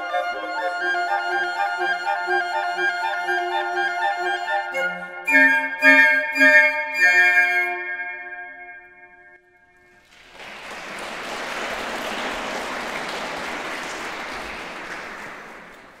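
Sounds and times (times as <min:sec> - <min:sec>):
flute ensemble chord: 0:00.0 - 0:09.1
audience applauding: 0:10.0 - 0:16.0.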